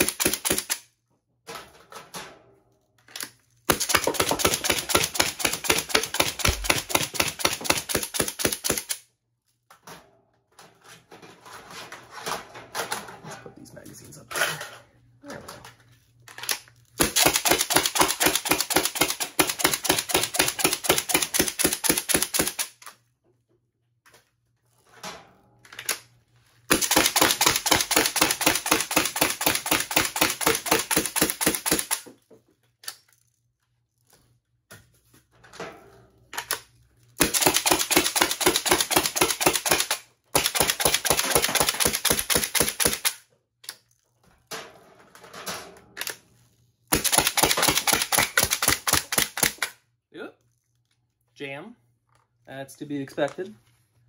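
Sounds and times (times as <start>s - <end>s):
air blaster firing full auto: 0.0s - 0.8s, 3.7s - 9.0s, 17.0s - 22.8s, 26.7s - 32.0s, 37.2s - 43.2s, 46.9s - 49.7s.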